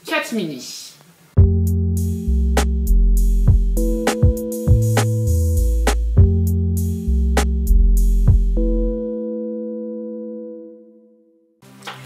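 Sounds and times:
held chord of pure tones: 1.4 - 11.5.

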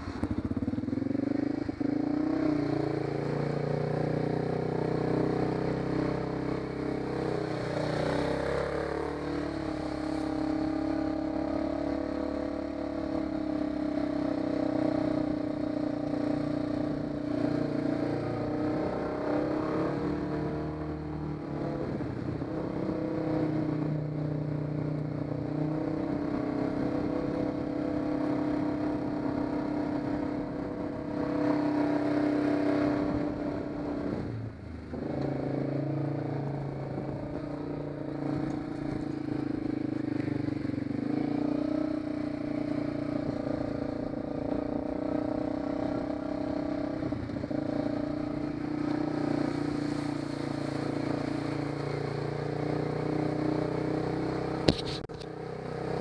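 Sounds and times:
quad engine running: 0.0 - 23.1, 25.5 - 56.0
water splashing: 48.5 - 52.6.

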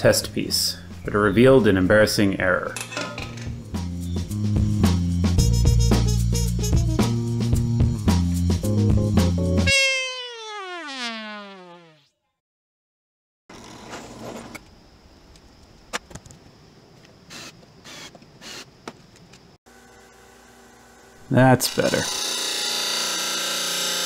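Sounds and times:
background music: 3.3 - 9.7
trumpet sliding downward: 9.7 - 12.0.

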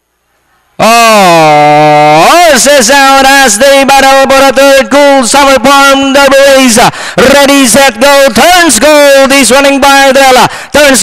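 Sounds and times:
man's long drawn-out call: 0.8 - 2.7.

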